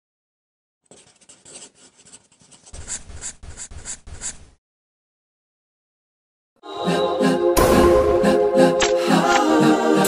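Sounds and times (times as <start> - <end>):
pen scratching on paper: 0.9 - 4.6.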